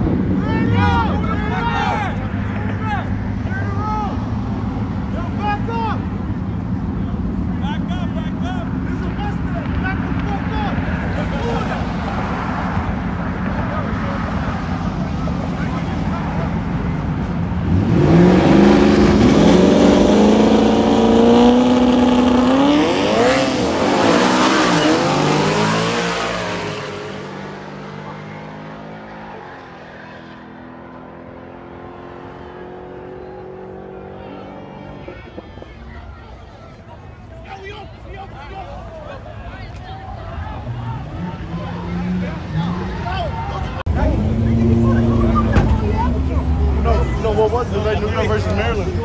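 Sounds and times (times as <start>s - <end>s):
car engines revving: 0.0s - 49.0s.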